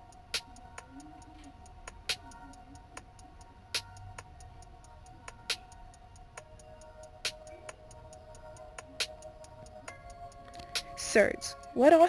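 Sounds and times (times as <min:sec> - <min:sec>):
soft held music notes: 0:00.0 - 0:12.0
ticking clock-like beat: 0:00.0 - 0:12.0.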